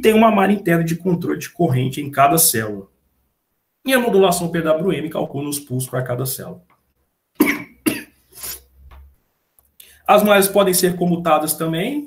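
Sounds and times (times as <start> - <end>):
man speaking: 0.0 - 2.9, 3.8 - 6.7, 10.0 - 12.0.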